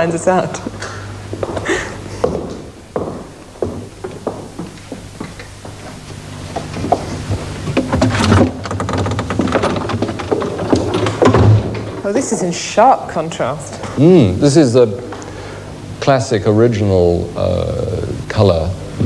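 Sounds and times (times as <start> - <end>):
low steady hum: 0.0 - 19.0
footsteps: 0.9 - 12.2
irregular knocks: 1.4 - 5.9, 6.6 - 12.2.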